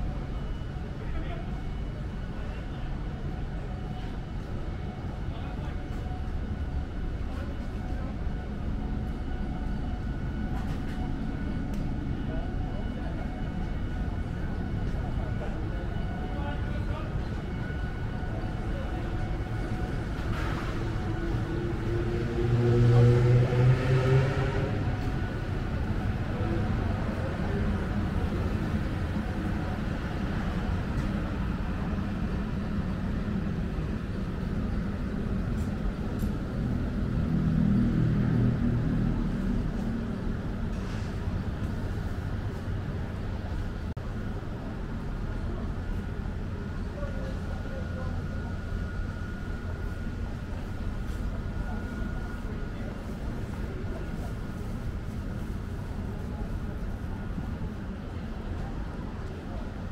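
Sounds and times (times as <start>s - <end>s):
faint voices of people: 0.0s - 59.9s.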